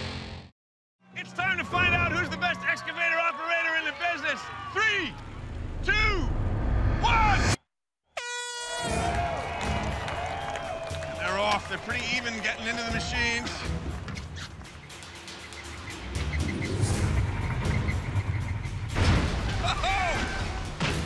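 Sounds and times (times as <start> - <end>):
people shouting and whooping: 1.1 - 5.4, 8.6 - 13.4, 19.4 - 20.8
air horn blast: 8.1 - 9.4.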